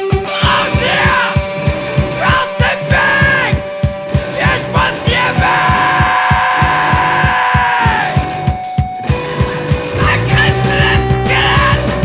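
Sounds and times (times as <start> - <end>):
punk rock band: 0.0 - 12.0.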